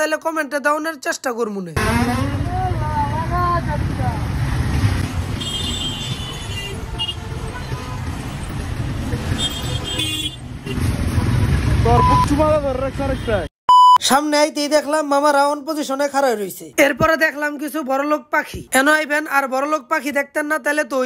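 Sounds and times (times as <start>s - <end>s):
horn toots: 1.8s - 2.5s, 5.3s - 8.5s, 9.2s - 11.0s
city traffic: 1.8s - 14.1s.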